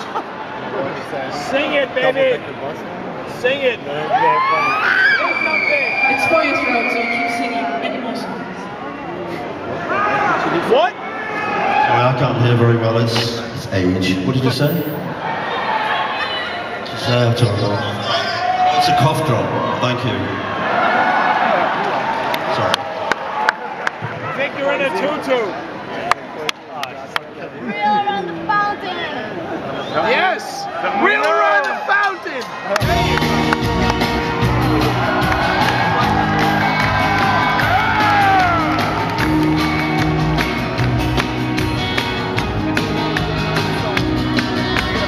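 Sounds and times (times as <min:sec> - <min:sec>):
crowd shouting and calling out: 0:00.0 - 0:45.0
live rock band playing: 0:32.8 - 0:45.0.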